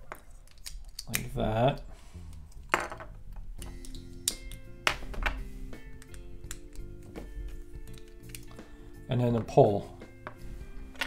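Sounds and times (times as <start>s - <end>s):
background music: 1.0s - 11.0s.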